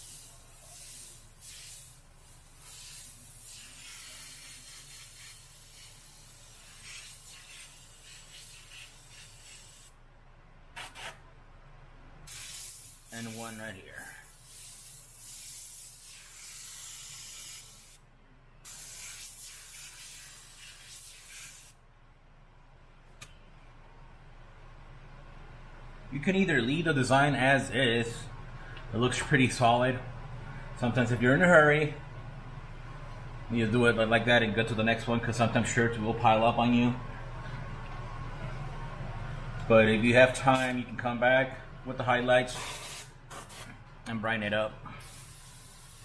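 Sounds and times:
airbrush puffs: 0.0 - 9.9, 12.3 - 18.0, 18.6 - 21.8, 42.5 - 43.7, 45.0 - 46.0
airbrush spraying hiss: 0.0 - 10.0, 12.3 - 18.0, 18.6 - 21.8, 42.5 - 43.7, 45.0 - 46.0.

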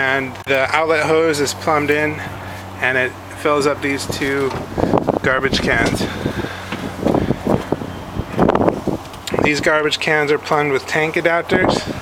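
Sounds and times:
wind buffeting microphone: 3.6 - 10.4, 11.3 - 12.0.

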